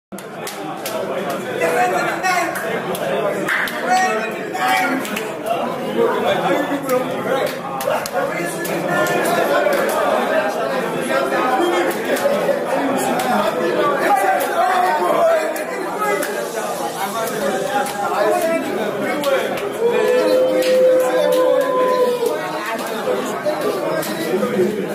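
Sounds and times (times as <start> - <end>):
men chattering: 0.2 - 24.9.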